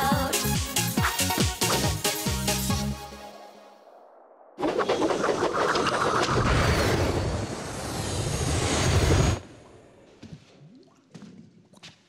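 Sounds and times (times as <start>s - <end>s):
airship flying past: 4.9s - 10.0s.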